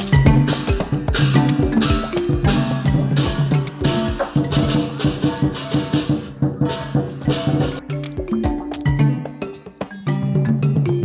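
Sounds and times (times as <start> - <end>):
cymbal crashes: 0.0 - 7.8
quick drum beats: 0.0 - 11.0.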